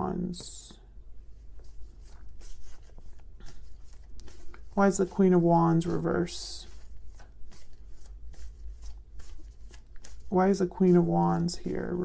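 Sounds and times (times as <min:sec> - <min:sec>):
cards being shuffled: 0:01.4 - 0:12.0.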